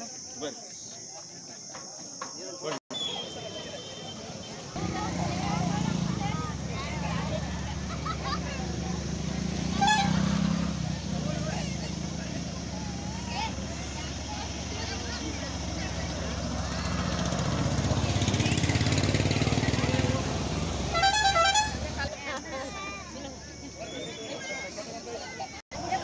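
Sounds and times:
faint voices: 0.0 - 26.0
truck and motorbike engines rumbling: 2.9 - 26.0
vehicle horn honks: 9.6 - 11.8, 20.9 - 22.1.

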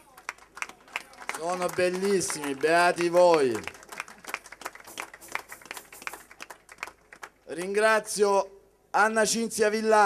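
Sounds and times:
scattered hand clapping: 0.0 - 7.8.

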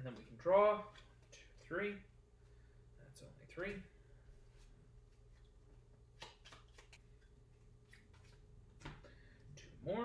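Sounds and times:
faint steady hum: 0.0 - 10.0
playing cards clicking: 6.1 - 7.0.

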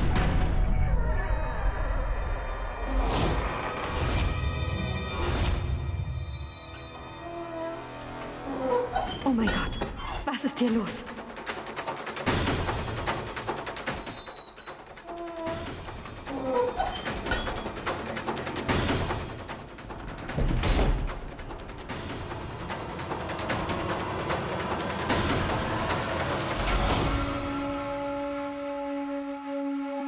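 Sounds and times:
dramatic background music: 0.0 - 30.0
fast drum rolls: 10.3 - 28.1.

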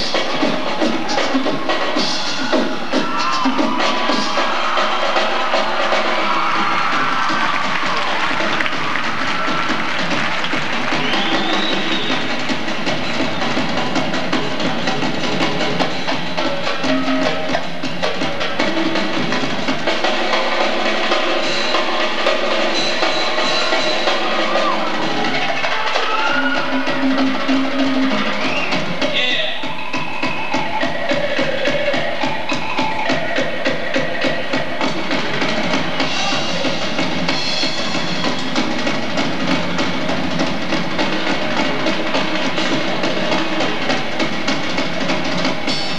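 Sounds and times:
drum kit solo: 0.0 - 45.9.

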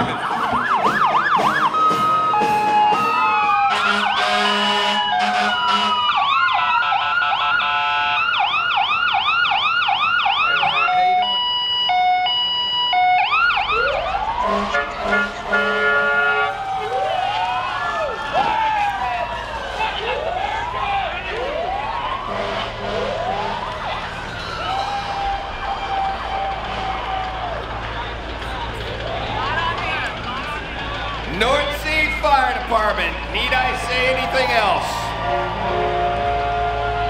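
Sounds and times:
two-tone siren: 0.0 - 27.1
sirens wailing: 0.0 - 37.0
sirens yelping: 0.0 - 37.0
long steady horn tones: 1.9 - 8.5, 14.4 - 16.6, 22.1 - 23.8, 26.5 - 27.4, 33.2 - 37.0.

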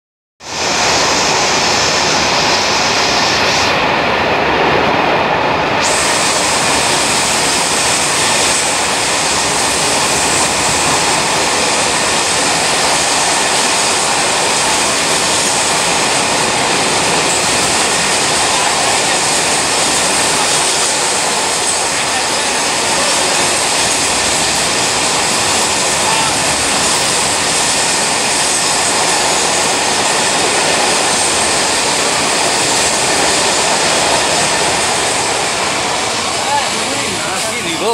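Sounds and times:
freight train wheels rattling: 0.6 - 37.9.

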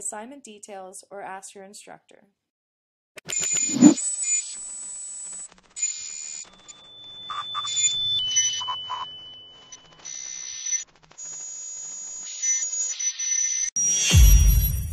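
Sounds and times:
high beep-like tone: 3.6 - 4.0.

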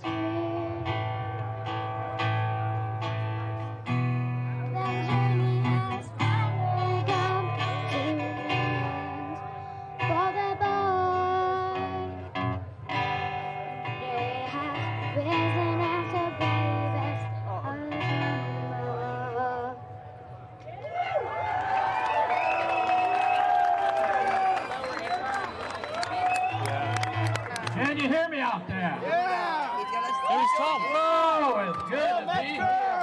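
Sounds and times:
strummed acoustic guitar: 0.0 - 20.5.

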